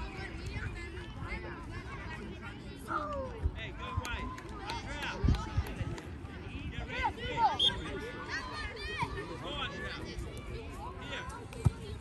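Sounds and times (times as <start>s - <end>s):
calls and shouts of players: 0.0s - 12.0s.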